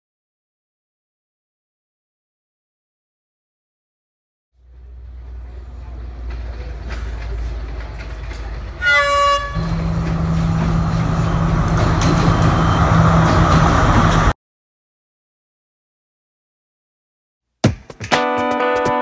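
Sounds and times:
diesel train rumbling: 4.6s - 14.4s
train wheel noise: 4.6s - 14.4s
train horn: 8.8s - 10.4s.

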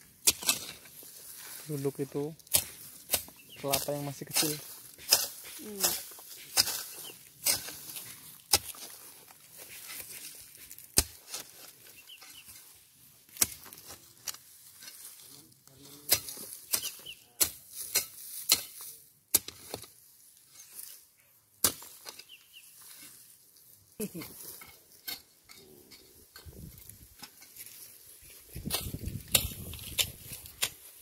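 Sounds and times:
soil scraping: 0.0s - 31.0s
hoe chopping into soil: 0.2s - 0.9s, 2.4s - 9.0s, 9.7s - 11.6s, 13.3s - 14.0s, 21.6s - 22.3s, 28.6s - 31.0s.

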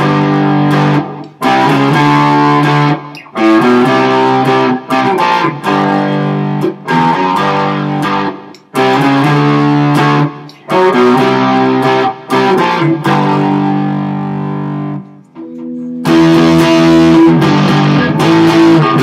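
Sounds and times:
overdriven electric guitar strumming chords: 0.0s - 19.0s.

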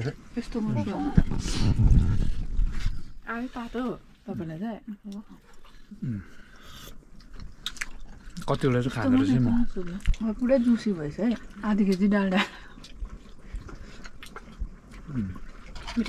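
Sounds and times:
man chewing food: 5.1s - 16.0s.

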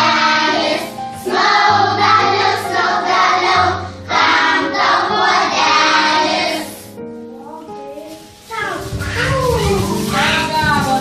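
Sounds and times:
children singing together: 0.0s - 6.9s.

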